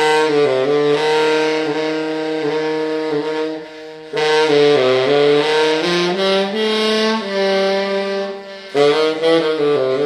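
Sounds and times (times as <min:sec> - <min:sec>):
tenor saxophone long low note: 0:00.0 - 0:10.0.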